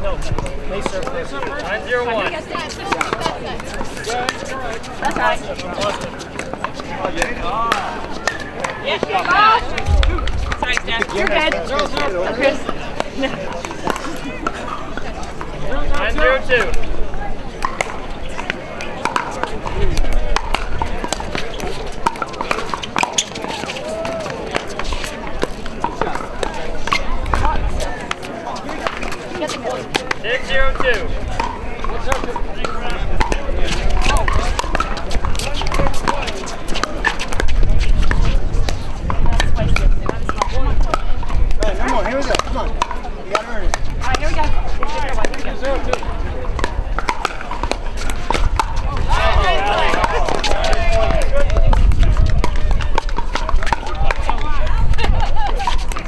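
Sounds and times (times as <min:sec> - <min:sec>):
spectators chatter: 0:00.0 - 0:56.0
wind rumble on microphone: 0:09.6 - 0:11.2, 0:37.4 - 0:41.8, 0:46.0 - 0:56.0
paddles striking plastic ball: 0:46.6 - 0:54.3.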